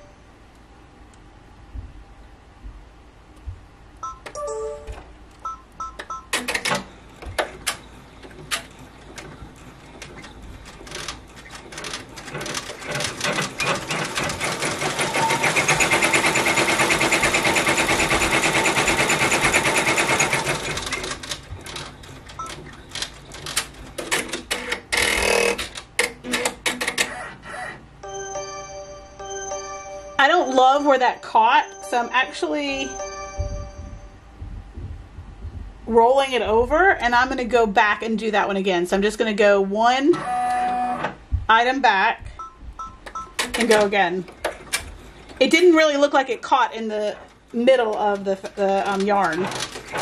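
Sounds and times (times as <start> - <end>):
embroidery machine stitching: 6.3 - 27.8, 47.8 - 50.0.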